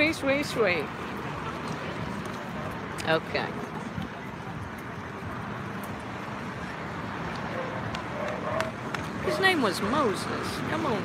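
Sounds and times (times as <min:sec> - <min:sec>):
hum of traffic: 0:00.0 - 0:11.0.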